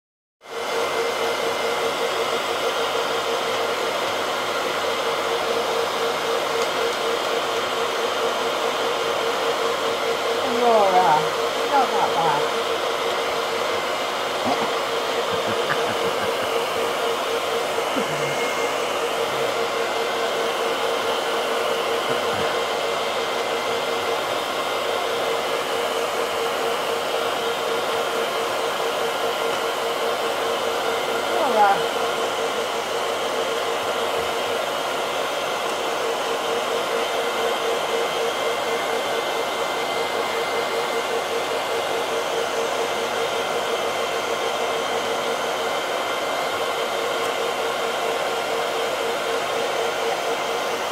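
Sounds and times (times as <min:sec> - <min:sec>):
hair dryer running: 0:00.4 - 0:50.9.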